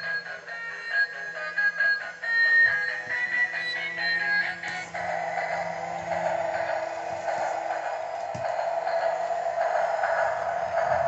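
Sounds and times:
toy train motor whirring: 0.0s - 11.0s.

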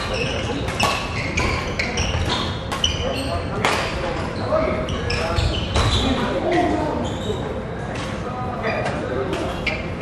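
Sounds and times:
sharp shuttlecock hits: 0.0s - 1.5s.

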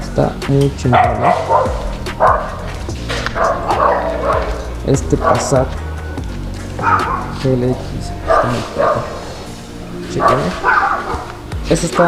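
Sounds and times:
dog barking and yipping: 0.9s - 6.0s, 6.6s - 12.0s.

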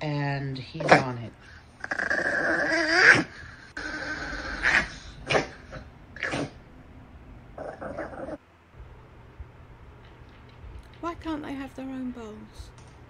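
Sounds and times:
dog growling: 1.8s - 6.6s, 7.6s - 8.4s.

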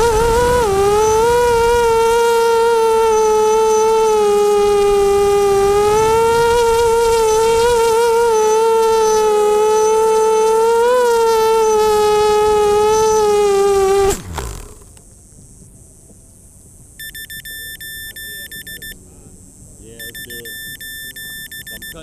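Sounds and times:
model aircraft motor buzzing: 0.0s - 15.0s.

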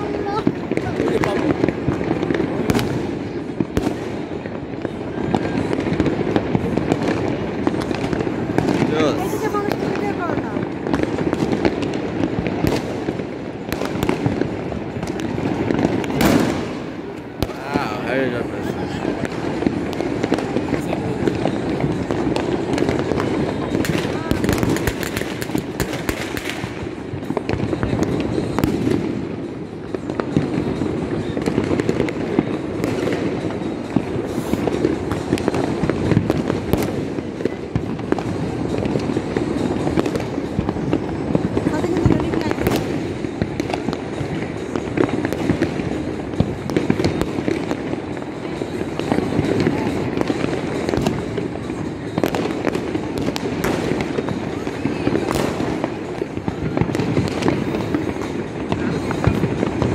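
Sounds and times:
distant fireworks crackling: 0.0s - 59.9s
people's voices nearby: 0.0s - 59.9s.

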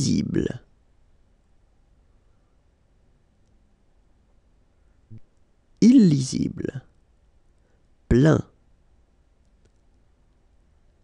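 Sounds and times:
faint clicks: 3.4s - 3.6s, 9.4s - 10.5s.

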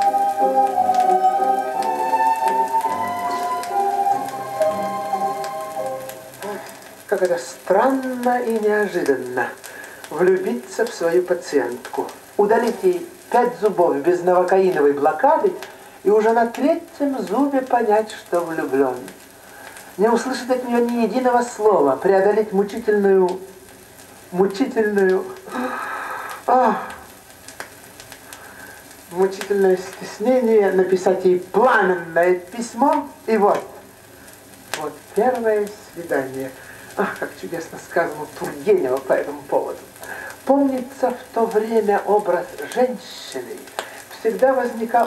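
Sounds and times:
orchestra music from vinyl record: 0.0s - 9.5s
record crackle and hiss: 0.0s - 45.0s.

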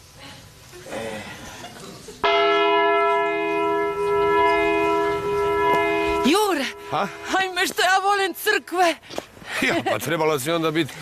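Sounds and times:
church bell ringing: 2.2s - 9.0s.

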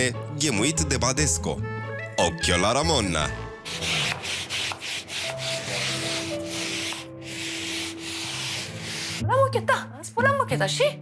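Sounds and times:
brush scrubbing wet carpet: 3.7s - 9.2s.

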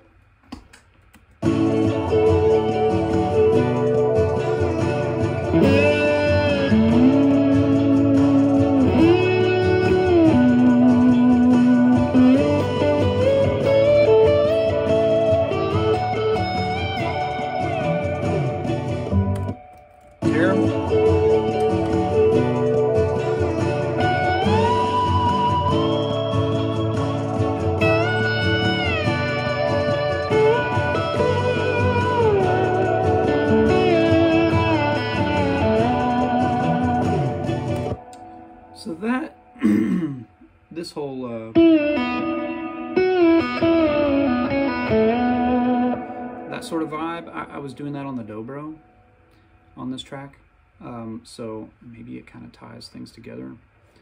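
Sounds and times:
electric slide guitar solo: 1.4s - 38.4s, 41.6s - 47.5s.

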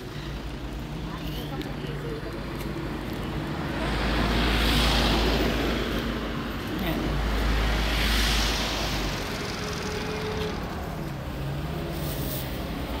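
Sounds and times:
engine hum and road noise: 0.0s - 13.0s
vehicle passing close by: 3.3s - 13.0s.

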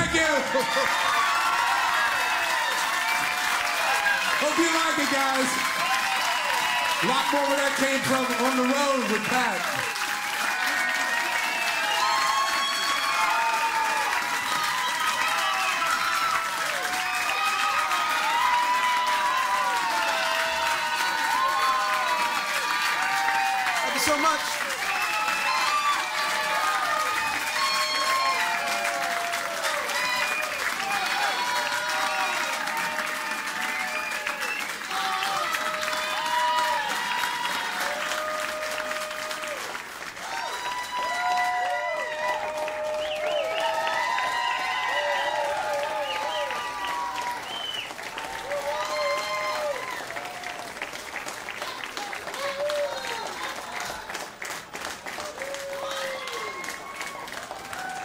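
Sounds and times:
audience applauding and cheering: 0.0s - 58.0s.

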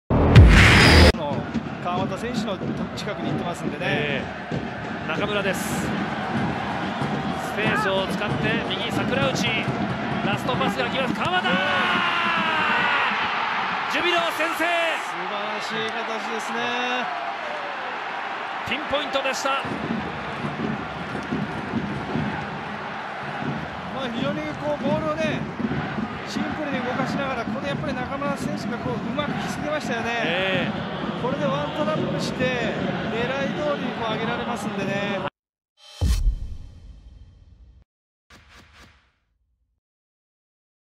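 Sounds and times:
stadium crowd noise: 0.4s - 35.3s
sports commentator talking: 5.0s - 6.0s, 7.4s - 13.2s, 13.8s - 17.1s, 18.6s - 19.7s, 23.9s - 25.4s, 26.2s - 35.3s.

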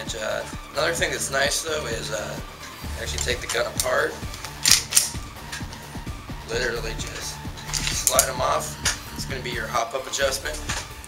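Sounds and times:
background music with steady beat: 0.0s - 11.0s
pistol slide clicking scrapes: 3.2s - 5.6s.

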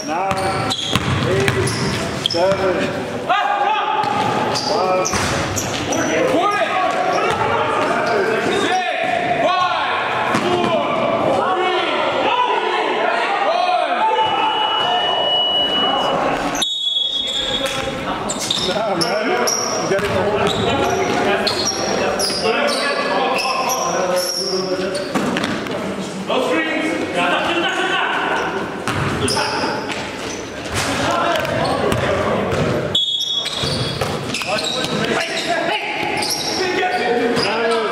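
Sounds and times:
basketball bouncing on hardwood: 0.3s - 1.7s.

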